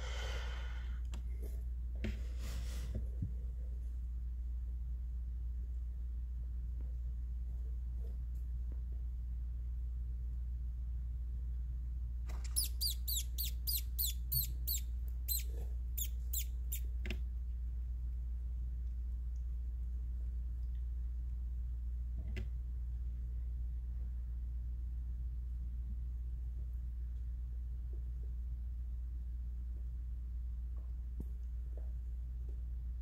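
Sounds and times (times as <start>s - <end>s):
low hum: 0.0s - 33.0s
mouse squeaking: 12.3s - 17.0s.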